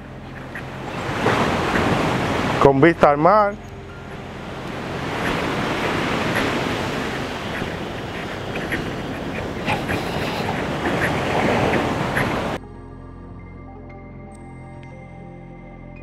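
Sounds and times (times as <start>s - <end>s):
soft background music: 0.0s - 11.2s, 12.6s - 16.0s
sea surf: 0.0s - 12.6s
wind on microphone: 3.7s - 12.6s.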